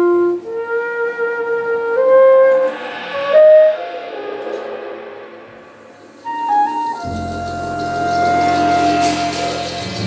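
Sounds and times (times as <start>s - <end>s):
flute holding long note: 0.0s - 5.6s, 6.2s - 10.0s.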